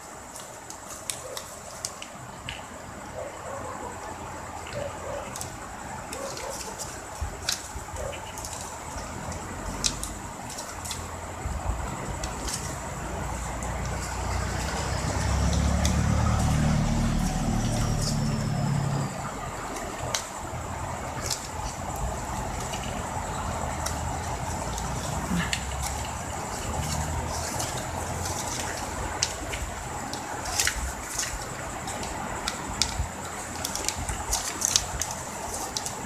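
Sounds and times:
ribbon crinkling: 0:04.7 - 0:36.0.

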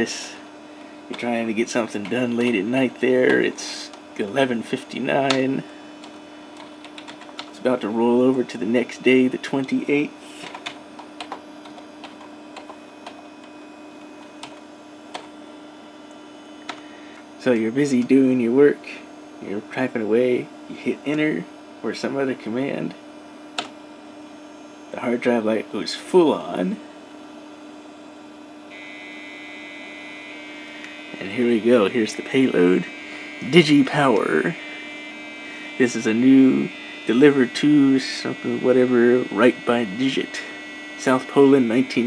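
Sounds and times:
steady low hum: 0:00.0 - 0:42.0
keyboard keys typing: 0:06.6 - 0:07.5, 0:10.4 - 0:13.2.

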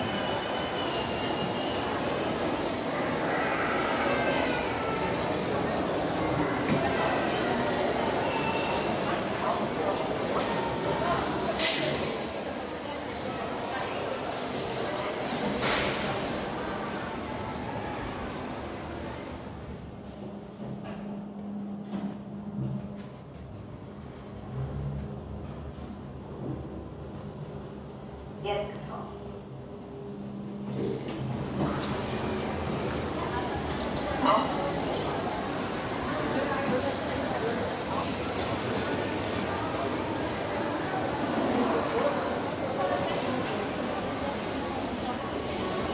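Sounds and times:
chatter of voices: 0:00.0 - 0:20.6, 0:26.3 - 0:45.9
elevator low hum: 0:17.7 - 0:36.4.

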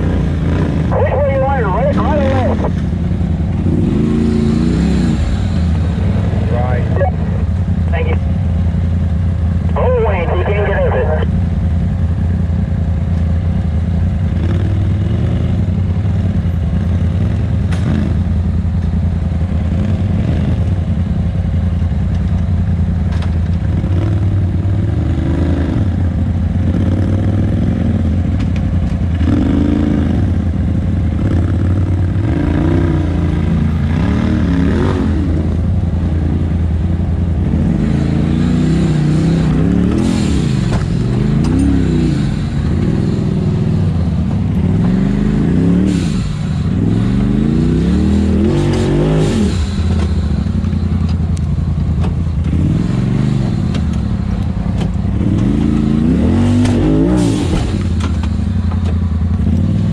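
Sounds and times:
engine idling: 0:05.4 - 0:14.3.

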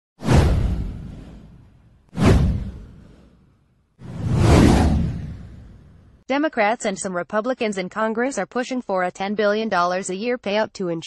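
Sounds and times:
whoosh sound effects: 0:00.2 - 0:06.2
deep rumble: 0:04.0 - 0:06.2.

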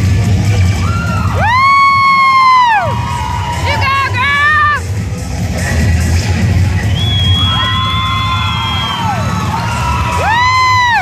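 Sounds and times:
cheerleading routine music: 0:00.0 - 0:11.0
crowd cheering: 0:00.8 - 0:04.8, 0:07.0 - 0:11.0.

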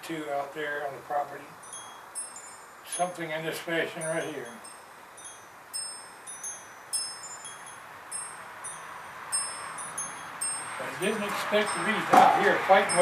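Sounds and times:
soft steady hiss: 0:00.0 - 0:13.0
metal wind chimes ringing: 0:01.3 - 0:13.0.

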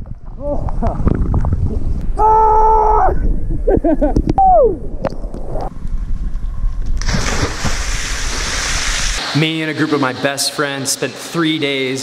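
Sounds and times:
person yelling: 0:02.2 - 0:03.2.

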